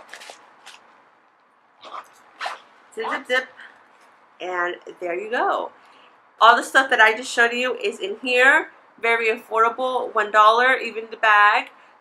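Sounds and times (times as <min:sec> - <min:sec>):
zipper being pulled closed: 0:01.8 - 0:02.7.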